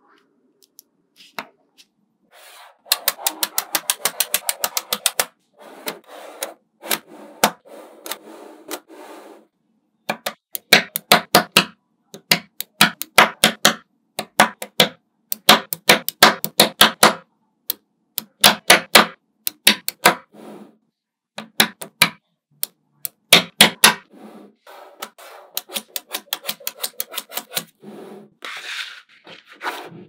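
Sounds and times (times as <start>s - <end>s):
magnetic balls clicking: 2.9s - 5.3s, 10.1s - 20.3s, 21.4s - 24.1s, 25.0s - 27.8s.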